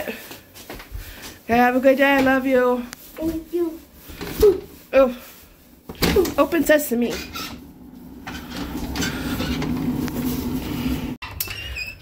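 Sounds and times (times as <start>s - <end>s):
garage door opener running: 7.2s - 11.2s.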